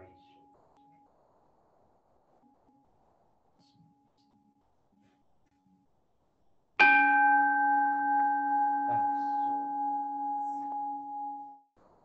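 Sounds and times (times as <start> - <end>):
bowl bell ringing: 6.8 - 11.6.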